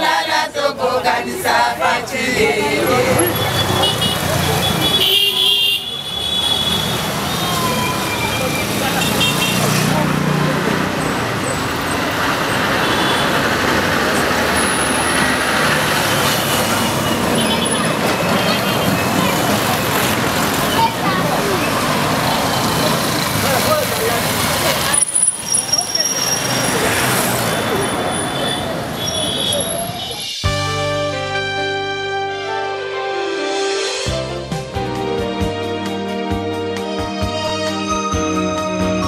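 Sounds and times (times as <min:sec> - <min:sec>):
women chanting: 0:00.0 - 0:03.6
voices: 0:00.0 - 0:05.6, 0:07.1 - 0:30.4
cars and motorcycles passing: 0:00.0 - 0:30.8.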